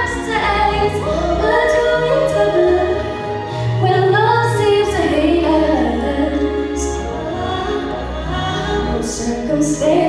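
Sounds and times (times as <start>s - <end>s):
low musical accompaniment: 0.0s - 10.0s.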